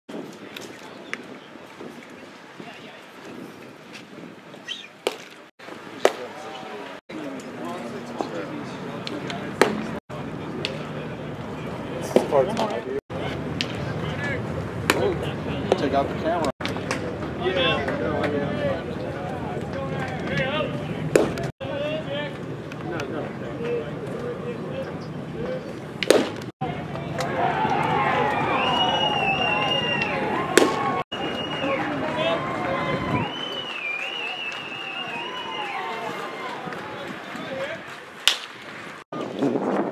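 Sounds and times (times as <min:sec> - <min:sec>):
people talking: 0:02.6 - 0:03.1, 0:05.9 - 0:25.8, 0:26.6 - 0:38.1
baseball hitting a glove: 0:21.1 - 0:21.5, 0:26.0 - 0:26.5, 0:30.5 - 0:30.8, 0:38.2 - 0:38.6
baseball smacking into mitt: 0:26.0 - 0:26.5.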